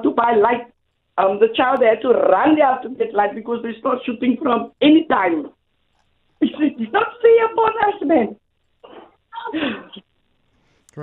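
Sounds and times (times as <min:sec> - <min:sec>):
woman's voice over telephone: 0:00.0 - 0:00.6, 0:01.2 - 0:05.5, 0:06.4 - 0:10.0.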